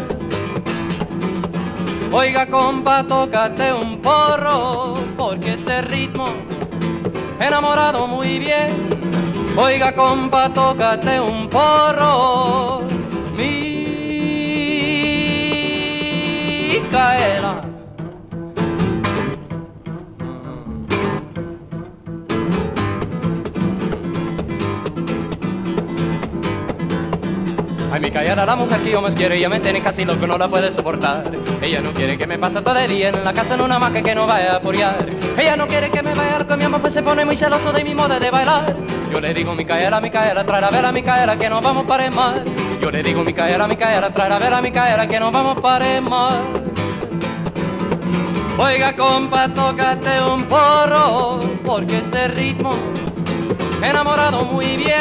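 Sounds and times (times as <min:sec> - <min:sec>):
acoustic guitar plucked and strummed: 0:00.0 - 0:55.0.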